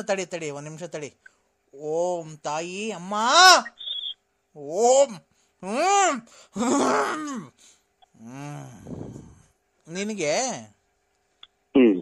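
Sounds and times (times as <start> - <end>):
person moaning and groaning: 5.6 - 7.5, 8.2 - 9.4.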